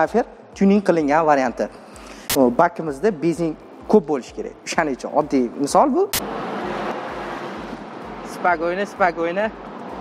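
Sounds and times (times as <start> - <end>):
road and engine noise in car cabin: 6.2 - 10.0.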